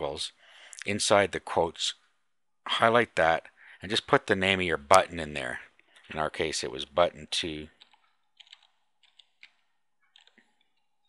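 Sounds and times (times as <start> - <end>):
computer keyboard keystrokes: 7.8 - 10.9.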